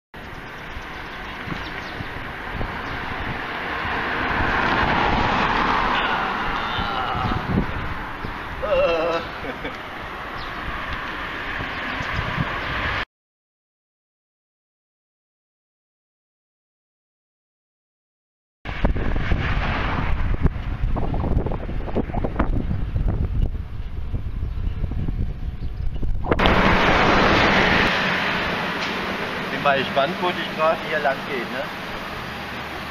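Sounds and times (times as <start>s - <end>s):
wind buffeting microphone: 0.2s - 13.0s, 18.7s - 30.3s
vehicle passing by: 1.0s - 13.0s, 26.4s - 32.9s.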